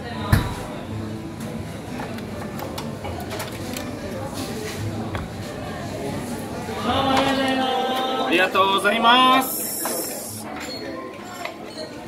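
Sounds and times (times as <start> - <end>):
murmur of voices: 0.0 - 12.0
tableware clicking and clinking: 1.9 - 5.4, 9.3 - 12.0.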